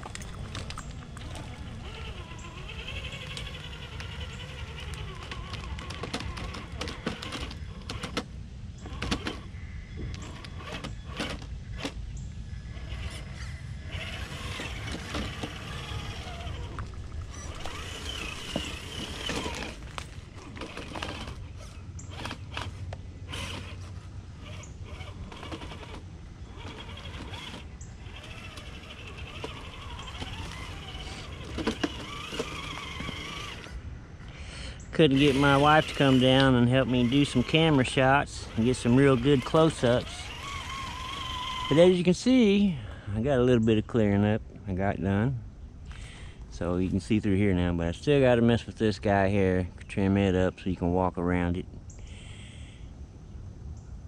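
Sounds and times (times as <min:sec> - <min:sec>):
electric motor whine: 0:00.0 - 0:12.0, 0:12.7 - 0:33.8, 0:35.0 - 0:42.0.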